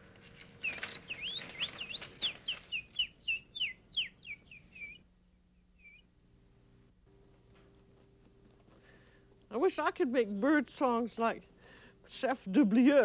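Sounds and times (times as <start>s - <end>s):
man whistling birdsong: 0.6s - 5.0s, 5.8s - 6.1s.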